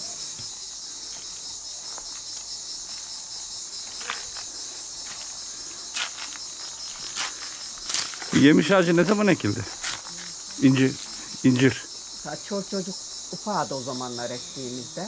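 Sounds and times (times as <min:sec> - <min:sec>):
cicadas buzzing: 0:00.0 - 0:15.0.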